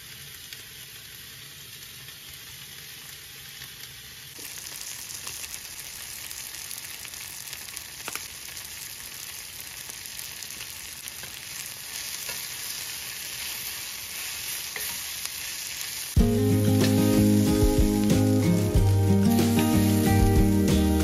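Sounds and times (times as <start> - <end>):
vegetables sizzling in a skillet: 0.0 - 21.0.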